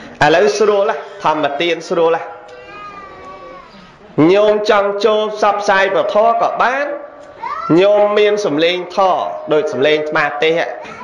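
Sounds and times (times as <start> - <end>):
man speaking: 0.0 - 2.5, 4.2 - 7.1, 7.7 - 11.0.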